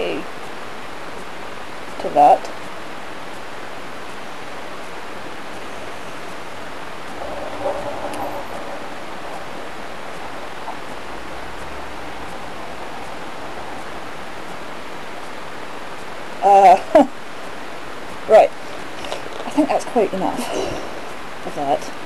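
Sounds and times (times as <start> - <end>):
microphone hiss: 0.0 - 22.0.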